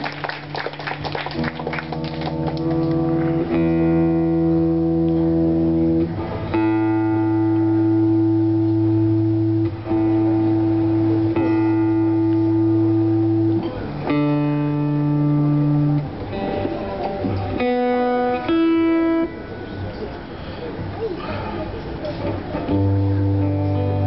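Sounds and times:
acoustic guitar chords: 1.4s - 19.9s, 22.3s - 24.0s.

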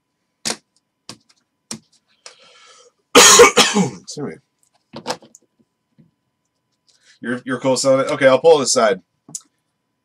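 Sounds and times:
man coughing and clearing throat: 3.2s - 4.1s.

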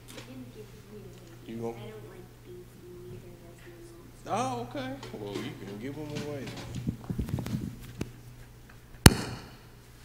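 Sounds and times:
faint room hum: 0.0s - 10.0s
sharp knock with ringing decay: 9.1s - 9.7s.

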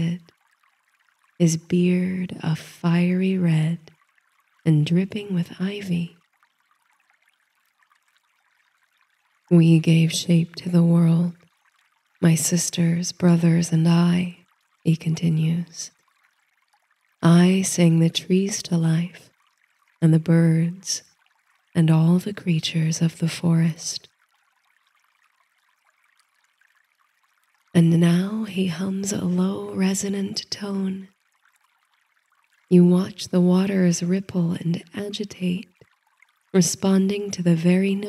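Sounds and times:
woman narrating: 0.0s - 0.2s, 1.4s - 3.9s, 4.7s - 6.1s, 9.5s - 11.3s, 12.2s - 15.9s, 17.2s - 19.2s, 20.0s - 21.0s, 21.8s - 24.1s, 27.8s - 31.1s, 32.7s - 35.7s, 36.6s - 38.0s
faint running water hiss: 0.0s - 38.0s
stream trickling: 0.0s - 38.0s.

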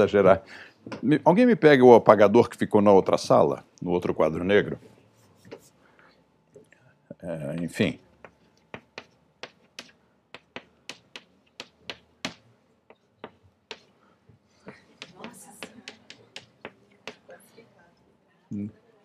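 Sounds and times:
chalk knocking on blackboard: 7.6s - 13.9s, 14.7s - 17.3s.

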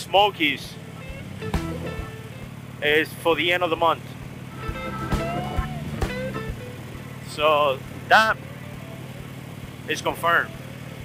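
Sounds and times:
motorcycle engine droning: 0.0s - 11.0s
background music: 1.1s - 2.2s, 4.5s - 6.8s.

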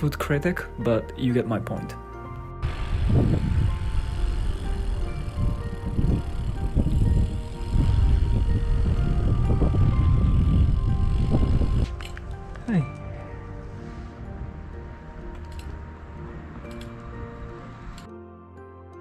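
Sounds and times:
quiet background music: 0.0s - 19.0s
wind buffeting microphone: 2.6s - 12.0s.

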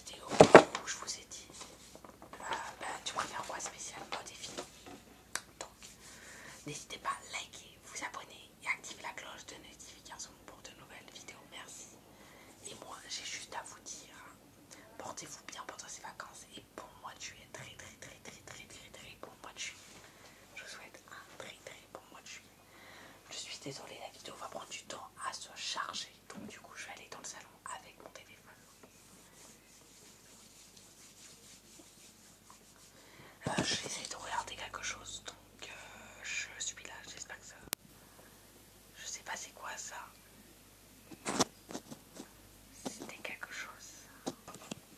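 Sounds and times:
boy whispering: 0.0s - 1.6s, 2.4s - 4.5s, 6.6s - 11.9s, 12.6s - 19.8s, 20.6s - 22.5s, 23.3s - 28.8s, 33.4s - 37.8s, 39.0s - 40.1s, 42.8s - 44.3s.

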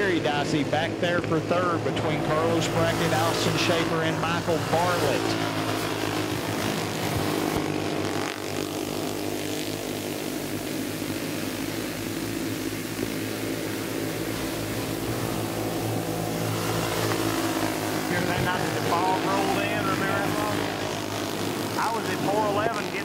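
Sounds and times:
go-kart engines racing: 0.0s - 23.0s
person commentating: 18.1s - 21.0s, 21.7s - 23.0s.

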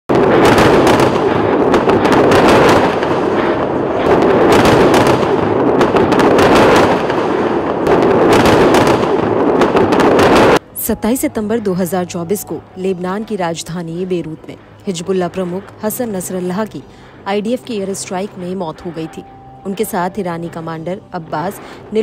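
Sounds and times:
explosive bangs and cracks: 0.1s - 10.6s.

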